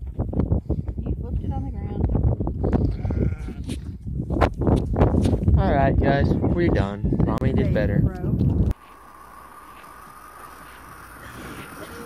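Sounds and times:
sheep bleating: 2.8 - 3.7.

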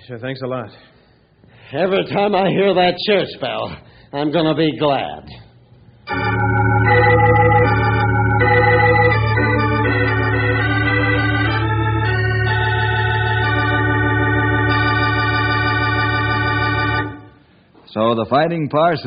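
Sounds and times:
organ chords: 5.9 - 17.6.

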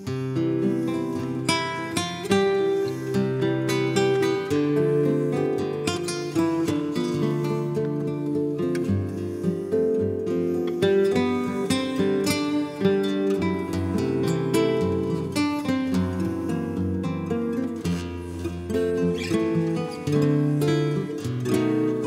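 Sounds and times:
nylon-string guitar duet: 0.0 - 22.0.

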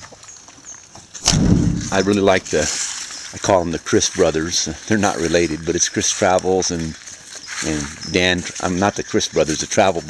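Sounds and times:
van door slamming shut: 1.2 - 2.1.

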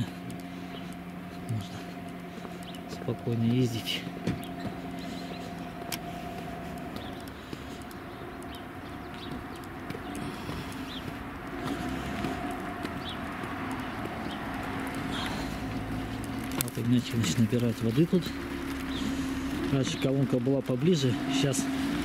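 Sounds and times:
footsteps on asphalt: 0.0 - 22.0
traffic noise: 0.0 - 22.0.

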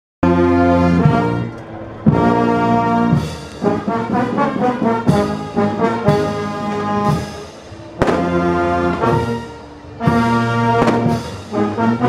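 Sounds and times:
brass band playing a march: 0.2 - 12.0.

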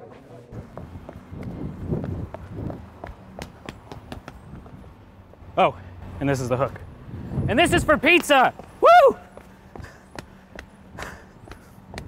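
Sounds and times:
footsteps running on paving: 0.6 - 5.4, 7.6 - 12.0.

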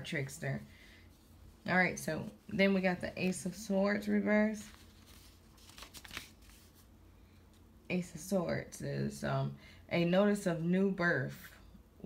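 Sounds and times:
paper cards rustling and clicking: 4.6 - 6.9.

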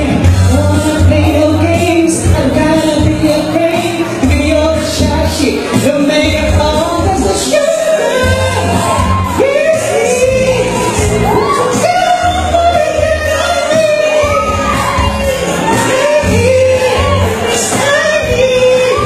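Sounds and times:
man singing into microphone: 0.0 - 19.0
pop backing track: 0.0 - 19.0.

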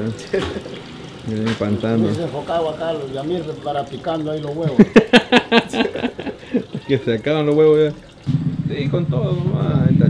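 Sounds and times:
man laughing: 4.6 - 7.0.

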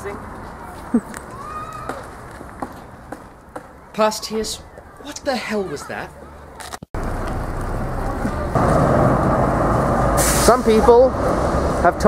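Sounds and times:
street traffic: 0.0 - 12.0
tram rumbling past: 7.0 - 12.0.

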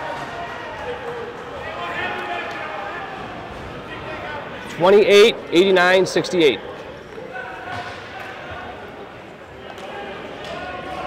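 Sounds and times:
muffled voices echoing: 1.5 - 11.0.

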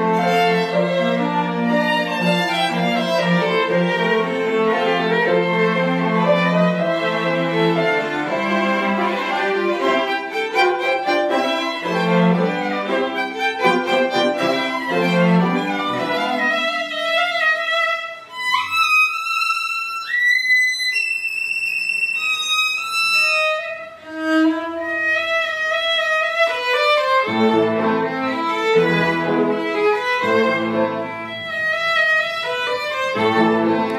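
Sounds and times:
high violin line sliding: 0.0 - 33.9
string quartet playing: 0.0 - 33.9.

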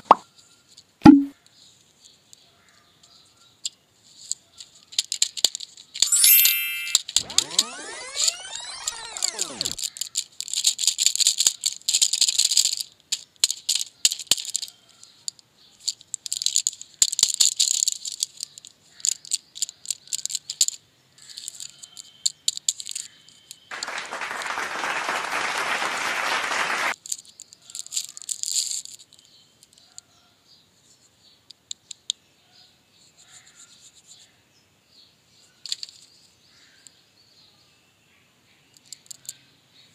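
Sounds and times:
packaging crinkling and clicking: 4.3 - 6.0, 7.0 - 14.8, 27.0 - 29.9
tone gliding down in pitch: 6.0 - 9.8.

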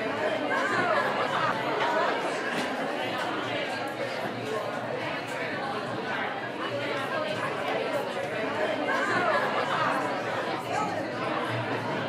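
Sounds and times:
indistinct chatter in echoing room: 0.0 - 12.0.

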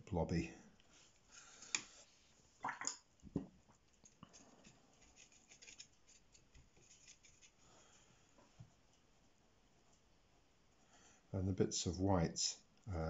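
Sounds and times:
brush scratching in paint palette: 3.8 - 8.0
knocks and scrapes: 4.2 - 7.6.

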